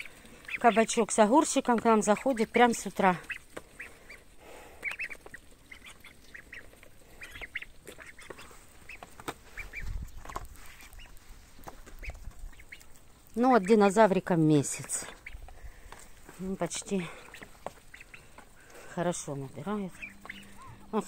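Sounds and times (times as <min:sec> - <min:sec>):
ducklings peeping: 0:00.0 - 0:21.0.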